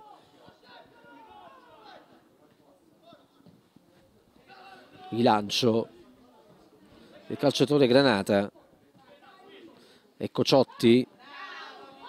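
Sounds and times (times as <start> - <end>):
distant shouts of footballers: 0.0 - 2.3, 4.4 - 5.5, 10.6 - 12.0.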